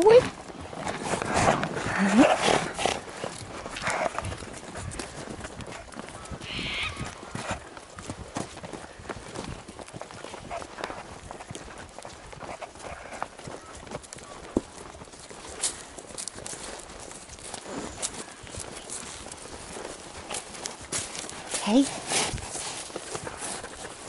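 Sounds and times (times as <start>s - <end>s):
horse hooves on grass and dirt: 0.0s - 24.0s.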